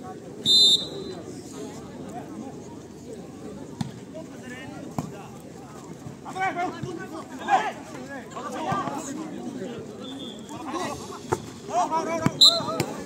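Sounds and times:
murmur of crowd voices: 0.0 - 13.0
players and spectators shouting: 10.0 - 13.0.

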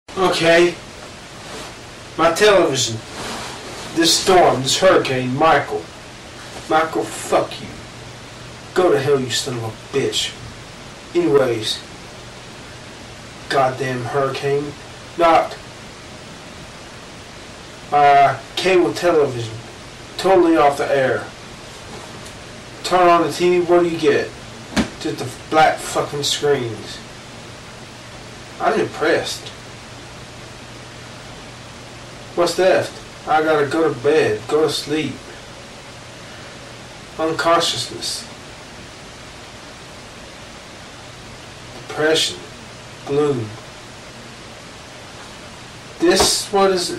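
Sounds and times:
steady hiss: 0.1 - 46.9.

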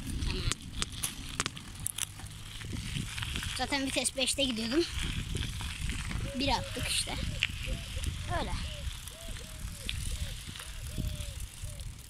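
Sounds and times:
bicycle squeaking: 0.0 - 12.0
wind rumble on microphone: 0.0 - 12.0.

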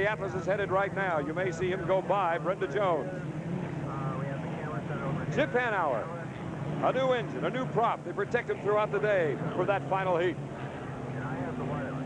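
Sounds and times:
racing boat engine drone: 0.0 - 12.0.

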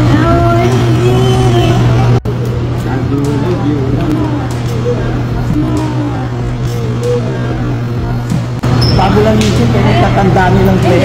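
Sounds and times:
indistinct voices chattering: 0.0 - 11.0
steady low hum: 0.0 - 11.0.

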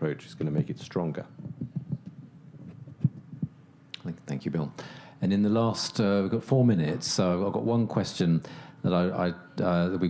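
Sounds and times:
microphone handling thumps: 1.4 - 3.6.

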